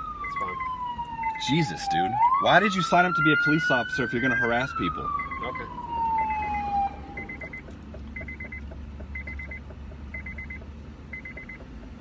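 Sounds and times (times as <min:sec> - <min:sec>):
siren winding down: 0:00.0 - 0:08.6
car warning chime beeps: 0:00.1 - 0:02.0, 0:02.6 - 0:11.7.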